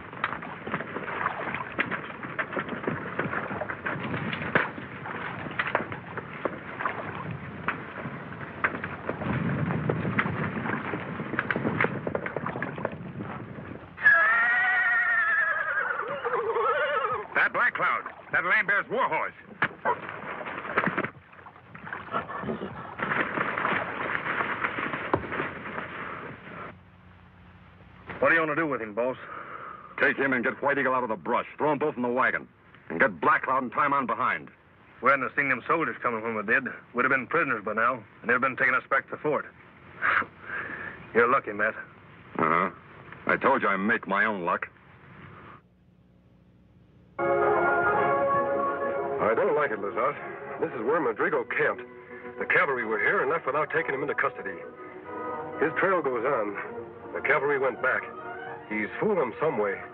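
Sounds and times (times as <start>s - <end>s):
scuffling with scattered knocks: 0.0s - 13.8s, 19.4s - 26.7s
horse neighing loudly: 14.0s - 17.4s.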